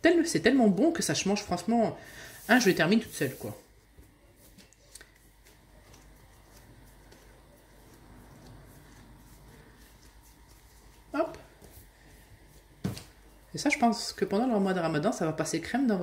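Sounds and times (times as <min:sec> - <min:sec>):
hands rolling dough on wood: 0:02.4 - 0:14.8.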